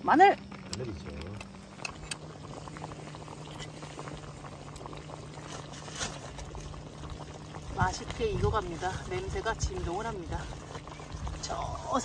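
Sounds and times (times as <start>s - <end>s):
gas stove hum: 0.0s - 12.0s
stew bubbling: 0.0s - 12.0s.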